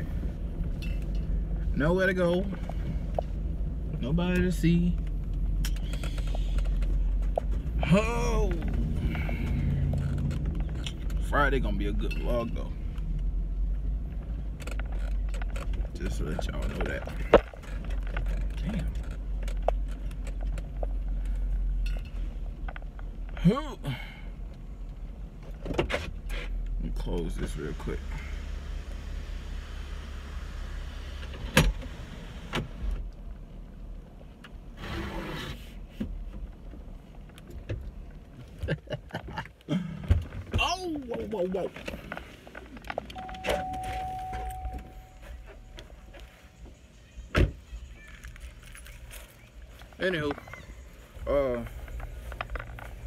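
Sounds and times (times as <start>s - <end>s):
car engine idling: 0.0s - 25.6s, 36.1s - 53.0s
electronic warning tone: 43.2s - 45.3s.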